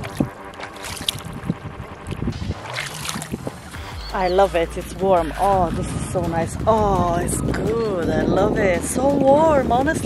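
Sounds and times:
feet splashing in shallow water: 0.0 - 3.9
soft background music: 0.0 - 10.0.

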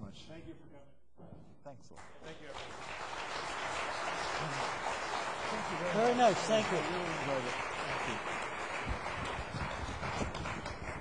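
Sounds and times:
audience applauding: 2.0 - 11.0.

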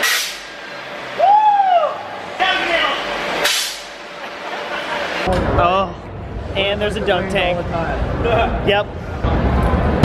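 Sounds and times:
air cannon hiss: 0.0 - 0.6, 3.4 - 4.0.

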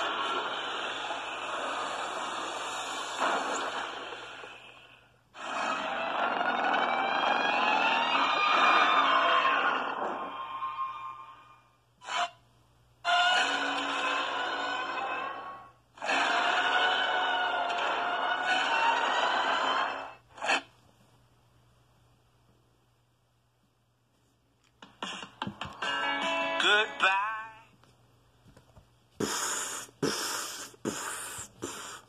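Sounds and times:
high-pitched monster screeches: 5.4 - 10.9.

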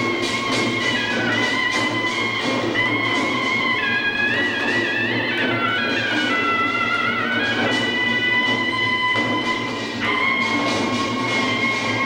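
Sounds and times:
hand drums beating: 0.0 - 12.0.

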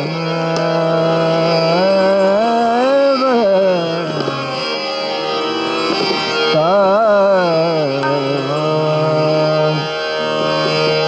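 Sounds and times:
man singing long steady note: 0.0 - 4.8, 6.4 - 11.0
drone: 0.0 - 11.0
harmonium: 0.0 - 11.0.

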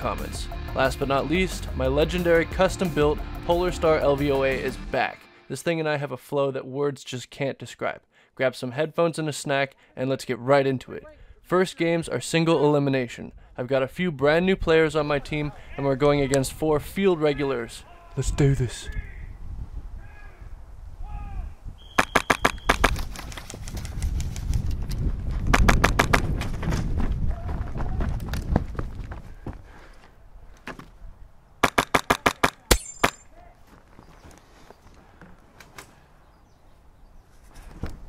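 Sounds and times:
airsoft guns firing in bursts: 22.0 - 23.1, 25.5 - 26.3, 31.6 - 32.7.

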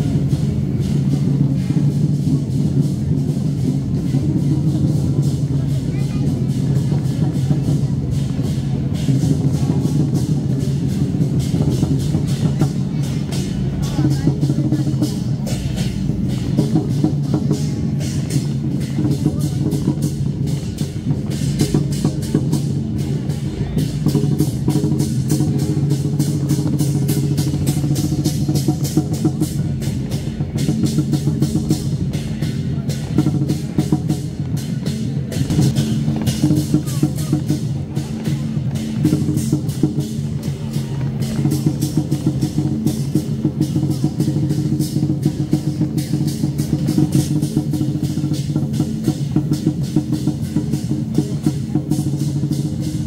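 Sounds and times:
cymbals clashing: 0.0 - 53.0
loud drum and percussion music: 0.0 - 53.0.

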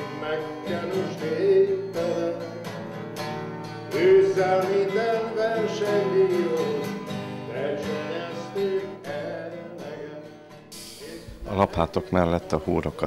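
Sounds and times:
man singing: 0.0 - 2.9, 3.9 - 13.0
acoustic guitar strumming: 0.0 - 13.0.

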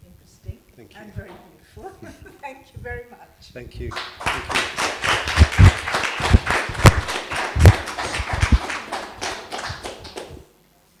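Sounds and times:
audience applauding: 3.9 - 10.5.

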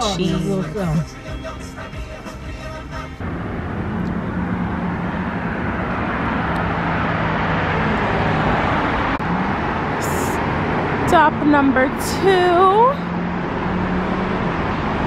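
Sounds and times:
traffic engine hum: 0.0 - 15.0.

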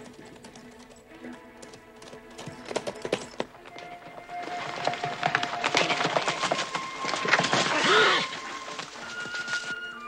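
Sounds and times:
horses galloping on hard ground: 0.0 - 10.0.

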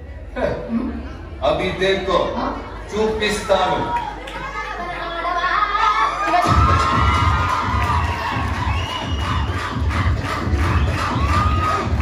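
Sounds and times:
crowd cheering and shouting: 3.0 - 12.0
dance music bass beat: 6.4 - 12.0.

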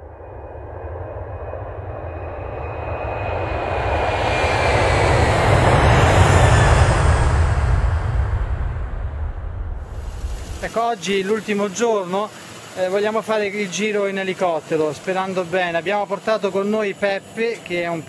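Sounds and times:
airplane passing overhead: 0.0 - 18.0
faint high whine: 0.0 - 18.0.

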